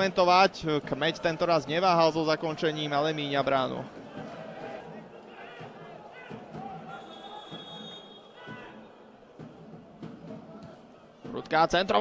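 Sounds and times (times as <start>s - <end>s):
distant players shouting: 3.9s - 9.2s
faint high whistle: 6.9s - 8.4s.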